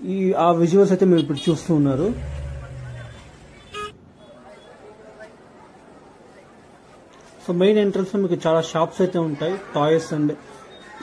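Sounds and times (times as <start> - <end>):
faint crowd murmur: 1.4 - 11.0
short high horn toot: 3.1 - 4.0.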